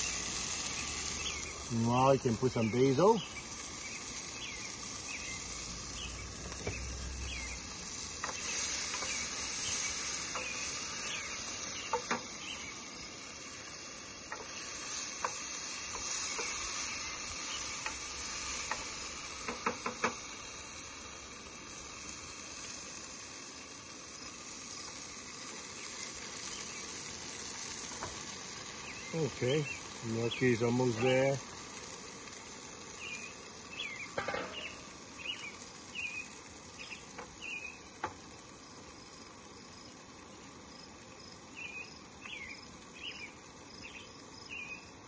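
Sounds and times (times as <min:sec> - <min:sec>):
sauce sizzling in a frying pan: 0:00.0 - 0:45.0
wooden spoon scraping a pan: 0:14.3 - 0:16.9.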